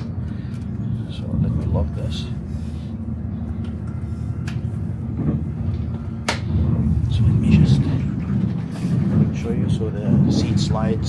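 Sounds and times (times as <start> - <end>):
train low rumble: 0.0 - 11.0.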